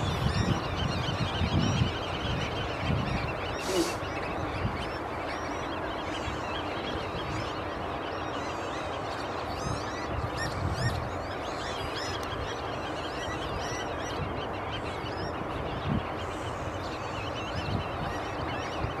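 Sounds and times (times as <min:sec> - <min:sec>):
wetland birds calling: 0:00.0 - 0:19.0.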